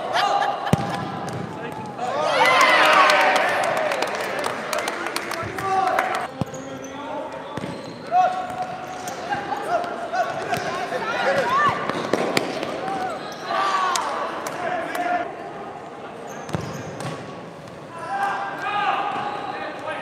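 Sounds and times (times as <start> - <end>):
players and onlookers shouting: 1.8 - 4.3.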